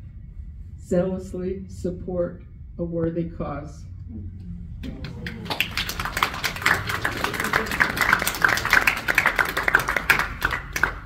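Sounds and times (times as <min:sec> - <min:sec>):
audience applauding: 0:04.8 - 0:11.0.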